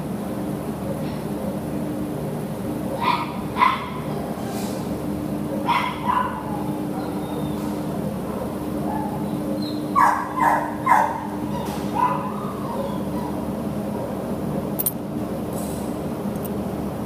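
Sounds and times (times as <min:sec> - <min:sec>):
dog barking: 0:03.0 - 0:04.0, 0:05.6 - 0:07.4, 0:08.3 - 0:09.2, 0:10.0 - 0:13.4.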